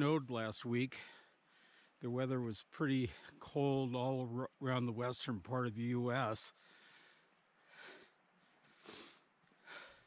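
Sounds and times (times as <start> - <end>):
person breathing while walking: 6.6 - 10.0.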